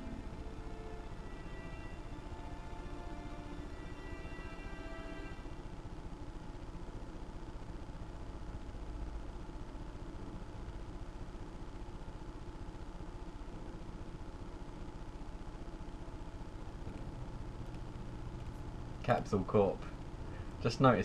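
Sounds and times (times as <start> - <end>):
music: 0.0 - 5.6
steady low rumble: 5.4 - 21.0.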